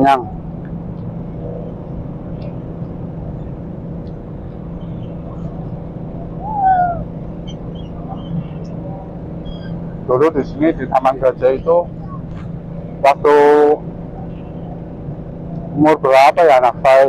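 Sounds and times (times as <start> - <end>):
city traffic rumble: 0.0 - 17.0.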